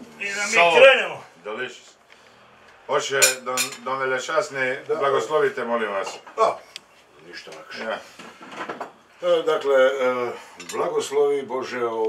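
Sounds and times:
cutlery and plates clinking: 3.2s - 3.9s, 10.6s - 10.9s.

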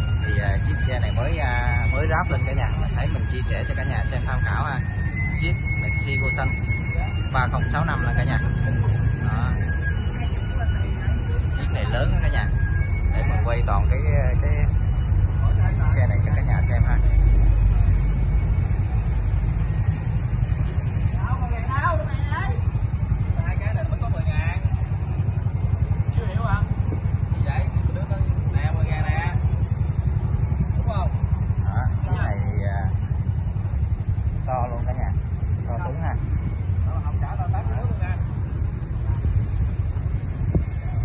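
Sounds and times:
people talking: 0.0s - 18.0s, 20.5s - 33.2s, 33.8s - 41.0s
engine rumbling: 0.0s - 41.0s.

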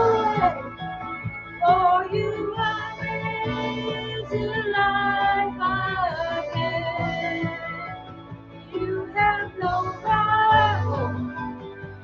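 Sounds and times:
woman singing worship song: 0.0s - 0.8s, 1.6s - 8.1s, 8.7s - 11.6s
backing track: 0.0s - 12.0s.

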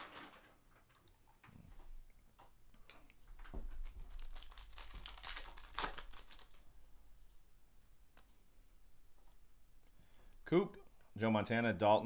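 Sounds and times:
card wrapper rustling and crinkling: 3.6s - 6.7s.

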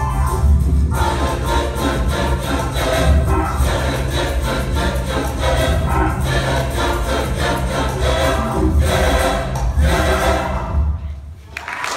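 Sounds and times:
large choir singing rock song: 0.9s - 11.0s.

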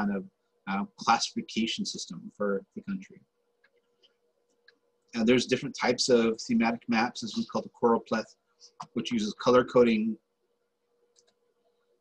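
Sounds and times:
faint steady hum: 0.0s - 12.0s
faint computer clicks: 11.1s - 11.4s.

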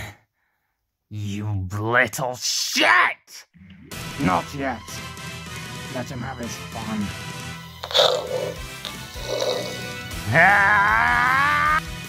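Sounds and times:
background music: 3.6s - 12.0s
person crying loudly: 9.2s - 11.8s.

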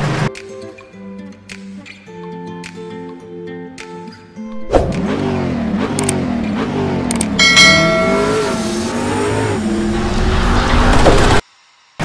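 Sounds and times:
engine revving: 4.6s - 11.4s
short bell-like ding: 7.4s - 8.8s.

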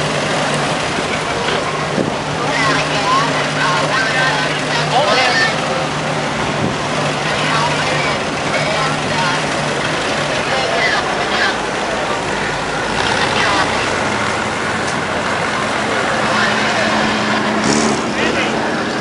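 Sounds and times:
cars passing slowly: 0.0s - 19.0s.

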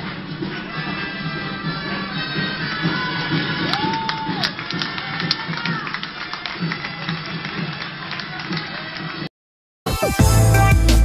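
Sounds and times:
crowd talking: 0.0s - 9.3s
music played outdoors: 0.0s - 11.0s
sharp claps or clicks: 3.7s - 9.2s.

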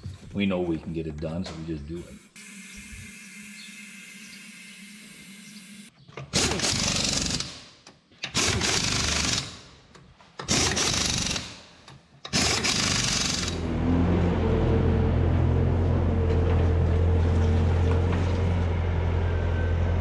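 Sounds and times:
pneumatic impact wrench: 2.4s - 9.8s, 10.4s - 13.6s
engine running: 12.5s - 20.0s.

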